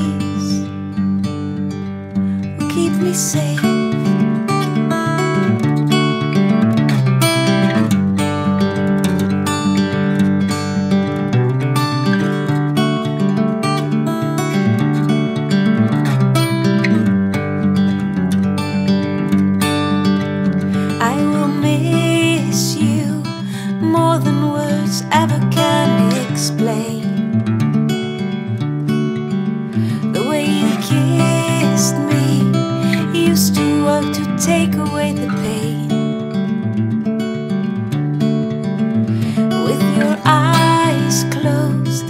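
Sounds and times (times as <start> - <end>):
acoustic guitar picking chords: 0.0 - 42.0.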